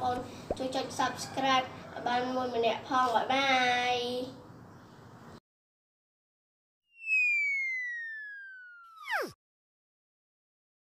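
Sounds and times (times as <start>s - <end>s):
whistle-like tone gliding down: 6.9s - 9.4s.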